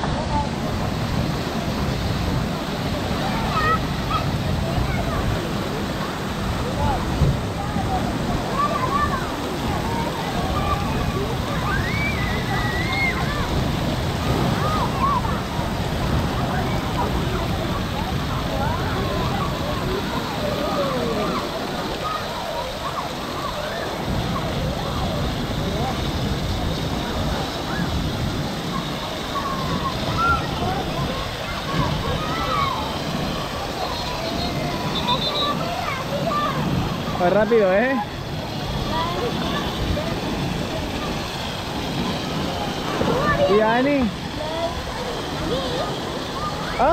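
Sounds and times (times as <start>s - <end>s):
children calling out and chattering: 0.0s - 46.9s
water spraying and splashing: 0.0s - 46.9s.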